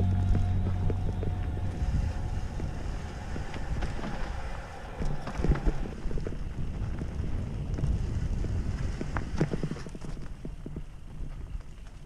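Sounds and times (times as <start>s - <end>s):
bike knocking and rattling: 0.0s - 12.0s
mountain bike rolling on dirt trail: 0.0s - 12.0s
wind rumbling on microphone: 0.0s - 12.0s.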